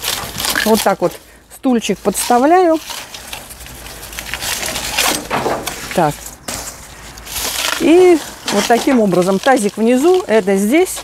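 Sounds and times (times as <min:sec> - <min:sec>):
stems and leaves rustling and crunching: 0:00.0 - 0:11.0.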